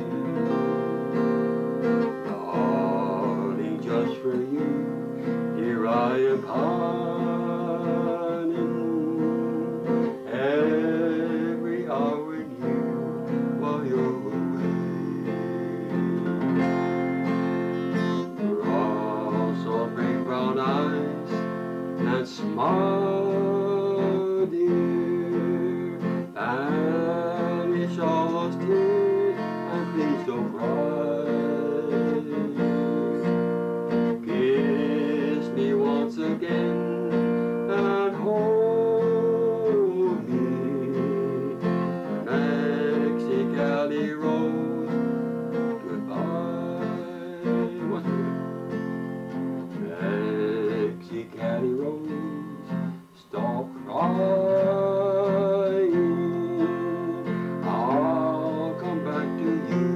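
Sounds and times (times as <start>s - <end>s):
acoustic guitar strumming: 0.0s - 59.9s
long-held melody line: 0.0s - 59.9s.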